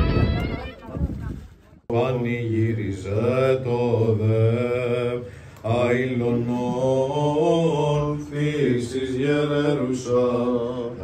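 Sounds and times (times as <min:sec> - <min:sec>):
man chanting a hymn: 0:01.9 - 0:11.0.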